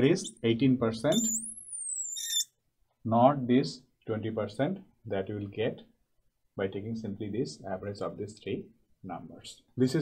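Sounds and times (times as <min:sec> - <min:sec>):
marker squeaking on glass: 0:00.0 - 0:00.5, 0:01.1 - 0:02.6.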